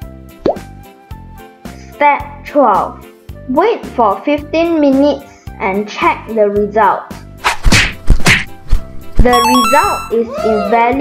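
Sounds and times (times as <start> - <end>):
cartoon whacks: 7.4 - 8.6.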